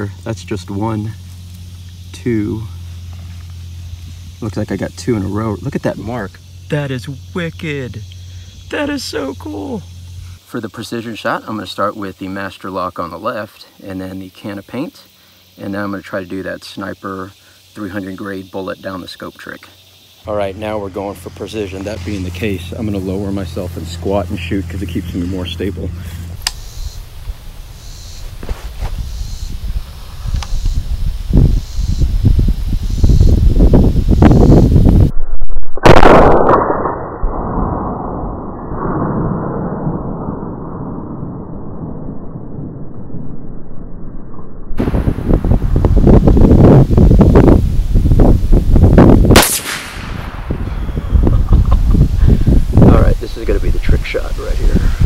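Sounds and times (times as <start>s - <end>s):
low gusty rumbling: 29.1s - 55.0s
muffled rumble: 33.8s - 55.0s
rifle shots: 35.8s - 36.9s, 49.3s - 50.9s.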